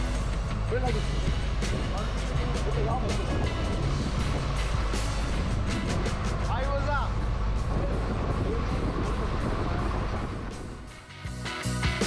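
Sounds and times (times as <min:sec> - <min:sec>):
boat engine rumbling: 0:00.0 - 0:11.4
music playing: 0:00.0 - 0:12.0.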